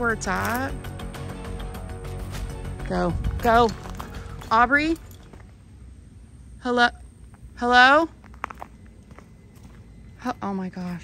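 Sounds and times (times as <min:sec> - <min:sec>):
footsteps on gravel: 0:00.0 - 0:00.8, 0:02.0 - 0:05.6, 0:07.2 - 0:11.0.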